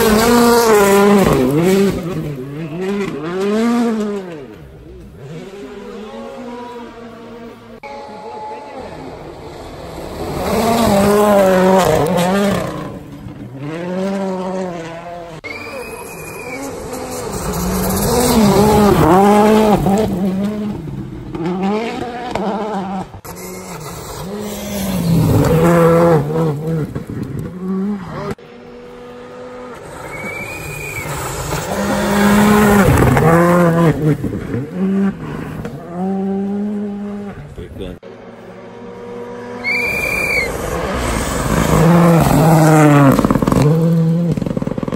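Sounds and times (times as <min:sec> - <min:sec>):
rally cars passing on gravel: 0:00.0 - 0:44.9.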